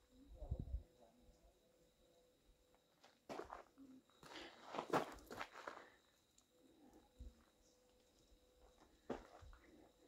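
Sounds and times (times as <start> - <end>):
footsteps on ground: 3.3 - 5.9, 8.8 - 9.6.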